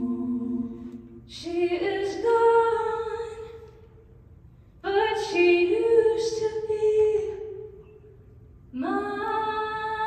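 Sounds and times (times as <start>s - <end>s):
woman singing a cappella: 0.0s - 3.8s, 4.8s - 7.8s, 8.7s - 10.0s.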